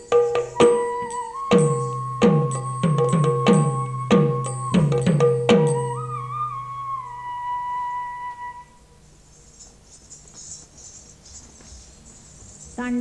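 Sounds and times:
faint hiss: 0:00.0 - 0:13.0
flute long held note: 0:00.5 - 0:05.1, 0:05.8 - 0:09.0.

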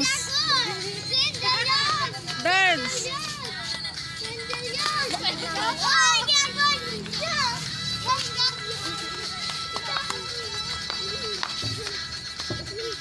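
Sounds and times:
background music: 0:00.0 - 0:13.0
children shouting and squealing: 0:00.0 - 0:13.0.

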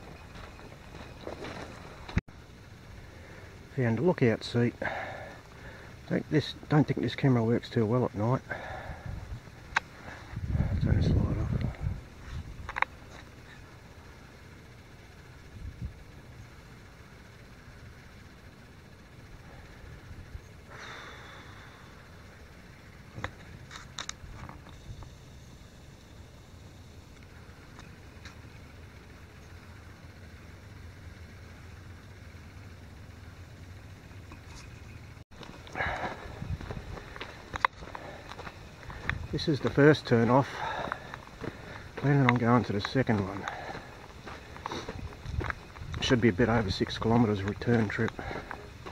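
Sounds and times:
footsteps rustling on trail: 0:00.0 - 0:02.2, 0:34.4 - 0:48.9
faint low hum: 0:00.0 - 0:48.9.

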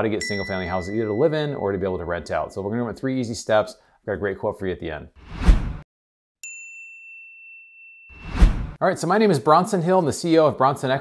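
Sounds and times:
high bell-like ding: 0:00.2 - 0:02.5, 0:06.4 - 0:08.4.

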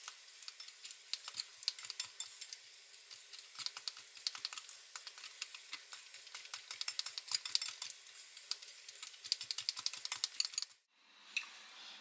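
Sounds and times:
whisk clicking against glass bowl: 0:03.6 - 0:10.7.

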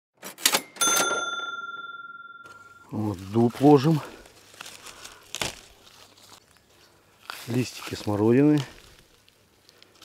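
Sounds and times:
bright bell ding: 0:00.6 - 0:03.0.

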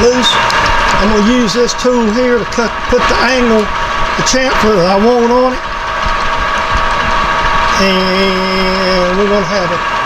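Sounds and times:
metal lathe humming and whining: 0:00.0 - 0:10.0.

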